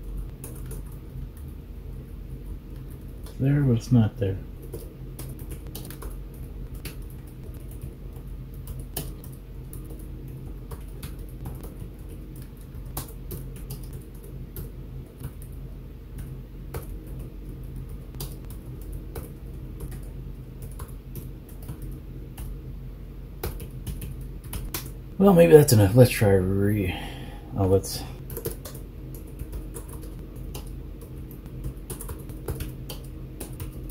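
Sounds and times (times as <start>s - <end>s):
steady low hum: 0.0s - 33.9s
typing on computer keyboard: 0.1s - 1.1s, 4.6s - 6.2s, 6.8s - 15.6s, 16.2s - 22.6s, 23.4s - 25.0s, 28.2s - 33.9s.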